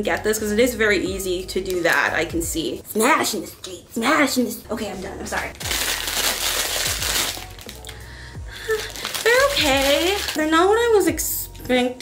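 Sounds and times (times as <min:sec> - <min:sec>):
background music with kick drum: 0:00.0 - 0:02.9, 0:05.5 - 0:12.0
crinkling rustle: 0:05.3 - 0:08.0, 0:08.6 - 0:10.4.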